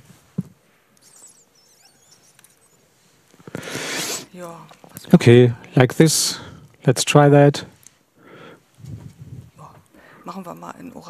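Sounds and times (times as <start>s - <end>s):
breathy rush into microphone: 3.4s - 4.3s.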